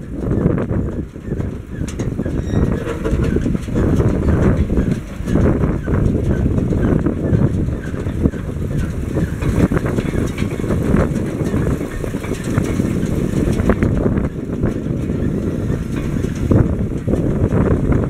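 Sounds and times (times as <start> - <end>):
tractor engine running: 0.0 - 18.0
wind buffeting microphone: 0.0 - 18.0.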